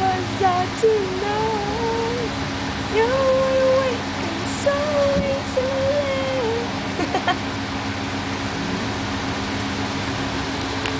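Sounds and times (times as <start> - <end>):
outdoor background noise: 0.0 - 10.9
steady low hum: 0.0 - 10.9
short squeaky vocal sounds: 8.6 - 9.0.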